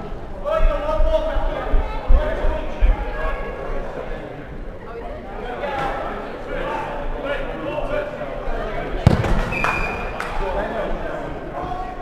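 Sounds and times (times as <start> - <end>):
players shouting and chatter: 0.0 - 12.0
dodgeball hitting hard: 9.0 - 10.0
referee's whistle blast: 9.4 - 10.2.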